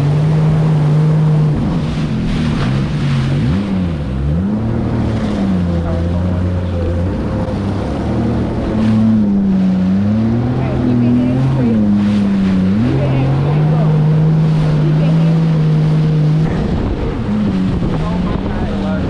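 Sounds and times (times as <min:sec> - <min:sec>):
jet ski engine running: 0:00.0 - 0:19.0
wind buffeting microphone: 0:00.0 - 0:19.0.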